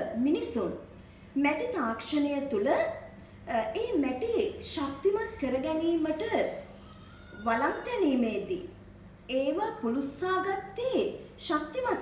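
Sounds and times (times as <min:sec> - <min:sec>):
woman lecturing: 0:00.0 - 0:06.7, 0:07.4 - 0:12.0.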